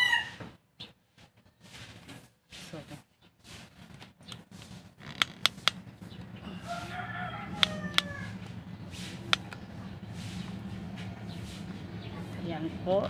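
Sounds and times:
rooster crowing: 0:00.0 - 0:00.5, 0:06.4 - 0:08.7
steady low hum: 0:03.6 - 0:13.0.

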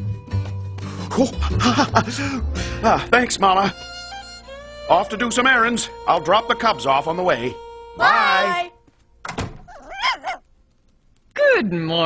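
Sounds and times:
door shutting thunk: 0:09.2 - 0:09.8.

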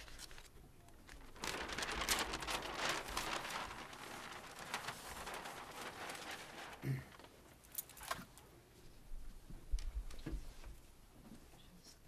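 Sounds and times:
paper rustling and crinkling: 0:00.0 - 0:08.4.

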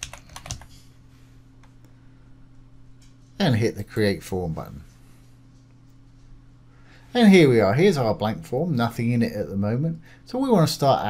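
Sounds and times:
keyboard typing clicks: 0:00.0 - 0:00.8.

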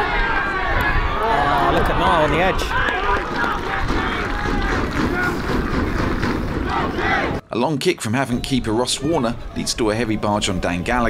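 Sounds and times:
distant indistinct shouts: 0:00.0 - 0:07.4.

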